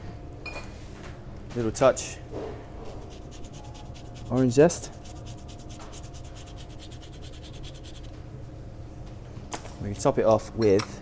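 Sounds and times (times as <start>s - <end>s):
grater rasping orange peel: 3.0s - 8.1s.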